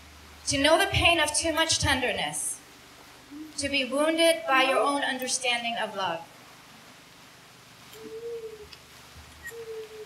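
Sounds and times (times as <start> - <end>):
pigeon cooing: 3.3 - 3.6, 7.9 - 8.8, 9.4 - 10.0.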